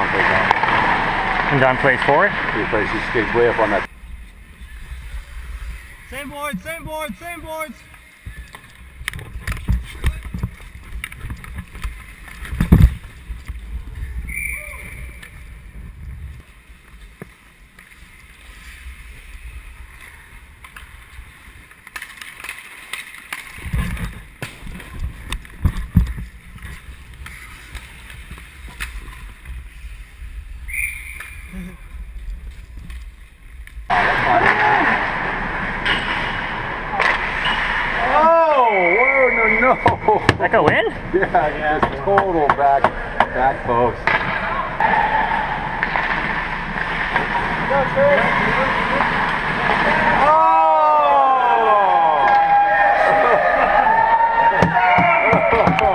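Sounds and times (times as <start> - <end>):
steady rush of noise: 0.0 - 20.6, 24.0 - 40.2, 42.8 - 54.5
sticks and puck clacking: 0.1 - 4.4, 6.2 - 14.0, 16.4 - 29.8, 31.2 - 38.4, 41.7 - 50.6, 54.5 - 55.9
skate blades scraping ice: 8.1 - 38.3, 43.7 - 50.7.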